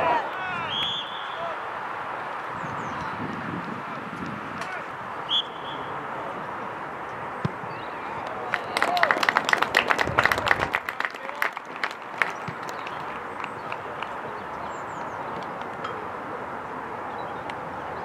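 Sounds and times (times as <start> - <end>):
distant voices: 4.5 - 18.0
spectators clapping: 8.2 - 14.4.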